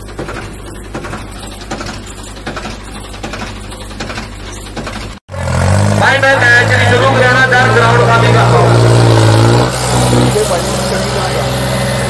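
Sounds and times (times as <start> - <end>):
machine humming and clattering: 0.0 - 5.2
tractor engine running hard: 0.0 - 12.0.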